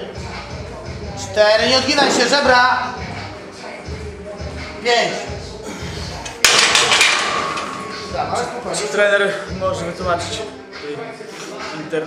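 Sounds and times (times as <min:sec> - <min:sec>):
barbell clanking on rack hooks: 0:06.4 - 0:08.1.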